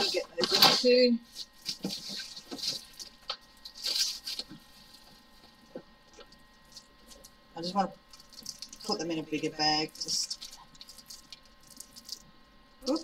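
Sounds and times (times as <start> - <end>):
plastic bags rustling and crinkling: 0.0 - 7.2.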